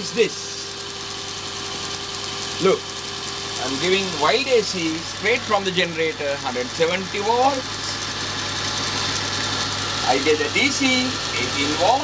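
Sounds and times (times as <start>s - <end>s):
electric motor whirring: 0.0s - 12.0s.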